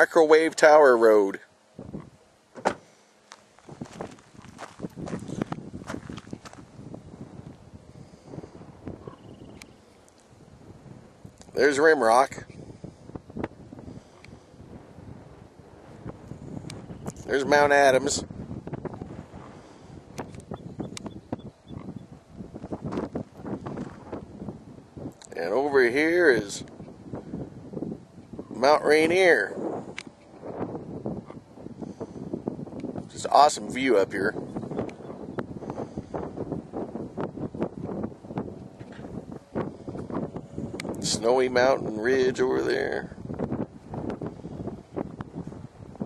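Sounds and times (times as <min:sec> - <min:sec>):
wind buffeting microphone: 0:00.0 - 0:46.0.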